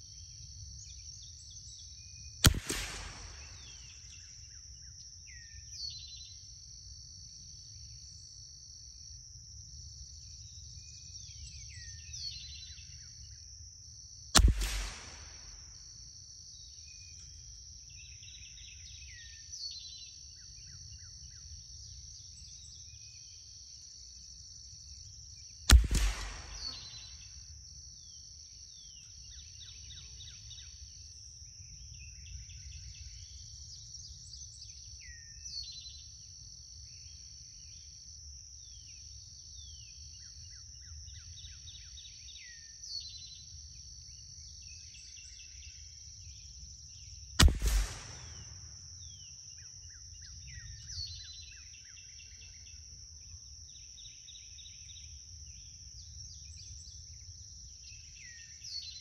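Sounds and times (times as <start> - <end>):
sharp gunshot: 2.5 - 3.9, 14.4 - 15.8, 25.7 - 27.2, 47.4 - 48.8.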